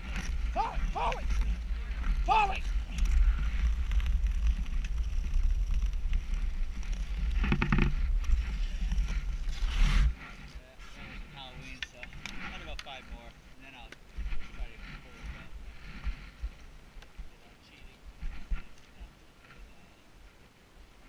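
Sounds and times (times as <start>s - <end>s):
wind buffeting microphone: 0.0s - 20.3s.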